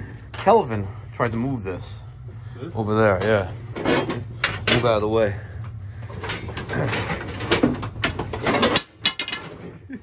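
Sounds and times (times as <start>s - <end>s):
knocks and scraping: 3.1s - 9.9s.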